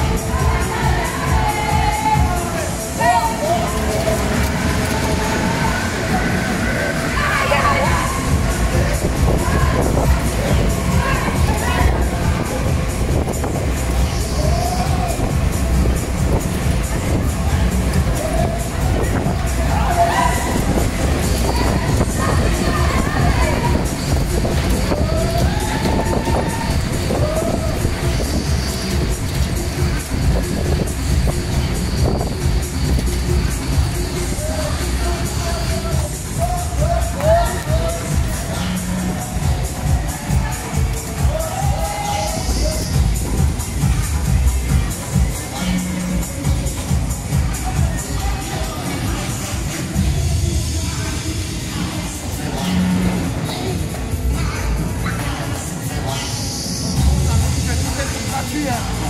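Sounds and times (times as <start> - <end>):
fairground ride rumbling: 0.0 - 59.0
loud fairground music: 0.0 - 59.0
voices: 0.0 - 59.0.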